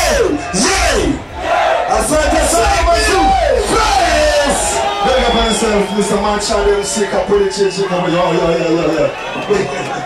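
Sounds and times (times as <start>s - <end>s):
crowd cheering and shouting: 0.0s - 10.0s.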